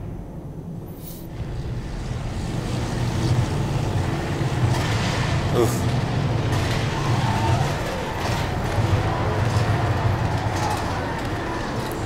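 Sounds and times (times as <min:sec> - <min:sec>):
plane engines droning: 0:00.0 - 0:12.0.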